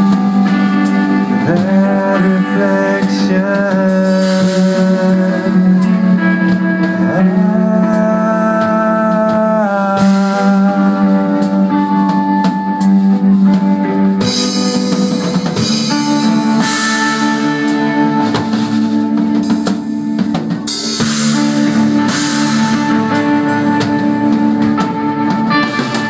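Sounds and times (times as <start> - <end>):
drum kit playing: 0.0 - 26.0
electric guitar sustained notes: 0.0 - 26.0.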